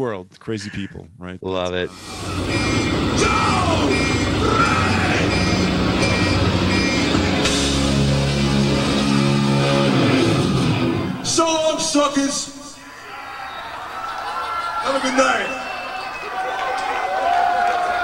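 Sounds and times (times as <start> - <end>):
live heavy metal band: 2.0 - 11.2.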